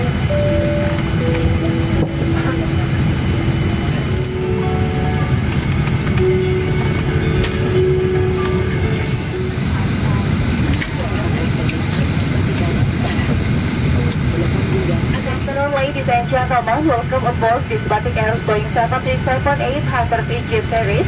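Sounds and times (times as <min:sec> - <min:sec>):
music playing: 0:00.0 - 0:11.4
aircraft cabin rumble: 0:00.0 - 0:21.0
indistinct passenger chatter: 0:00.0 - 0:21.0.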